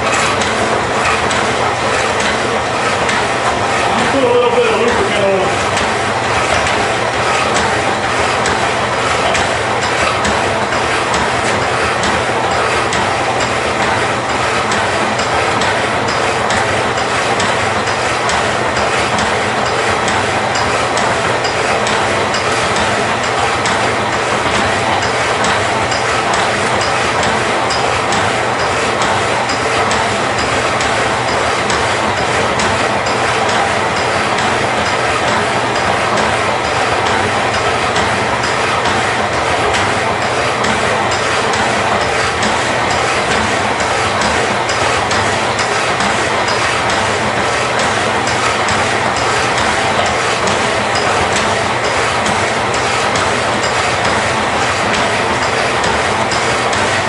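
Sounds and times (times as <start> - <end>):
power saws cutting metal: 0.0 - 57.0.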